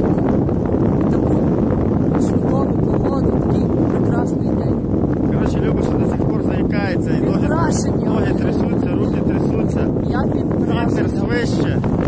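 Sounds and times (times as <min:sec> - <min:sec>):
strong wind on microphone: 0:00.0 - 0:12.0.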